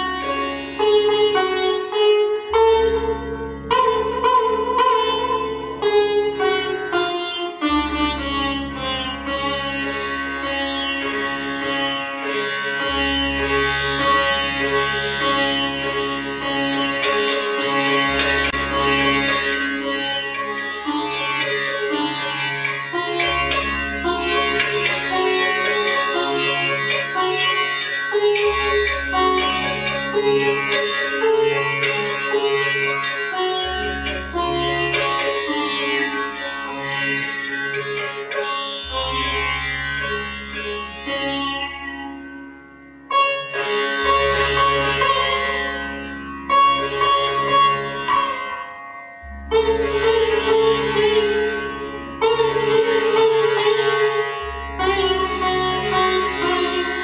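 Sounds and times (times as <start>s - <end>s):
sitar drone: 0.0s - 57.0s
sitar melody: 0.0s - 57.0s.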